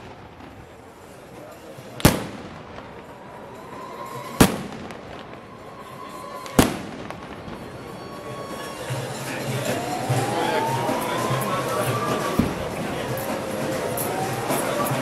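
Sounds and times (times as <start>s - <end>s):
crowd background noise: 0.0s - 15.0s
loud bangs with echo: 2.0s - 3.2s, 4.3s - 5.5s, 6.5s - 8.1s
music with rising tone: 8.1s - 15.0s.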